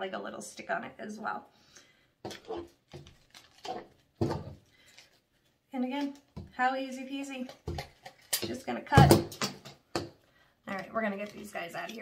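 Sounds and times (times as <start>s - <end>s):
artificial flowers rustling: 2.2s - 5.6s.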